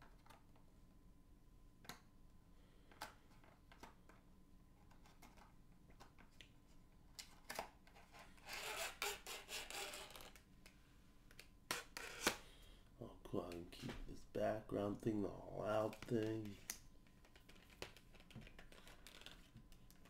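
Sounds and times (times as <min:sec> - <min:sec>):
toy package clicks and scraping: 0:07.2 - 0:10.4
rubbing and scratching packaging: 0:07.3 - 0:10.4, 0:15.6 - 0:20.0.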